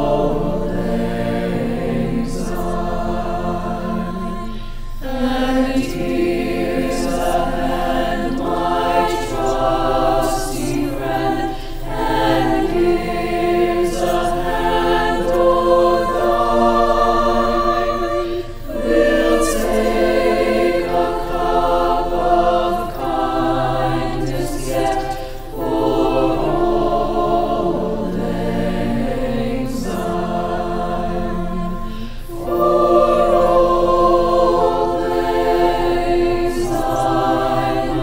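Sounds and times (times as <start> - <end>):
choir singing: 0.0 - 38.0.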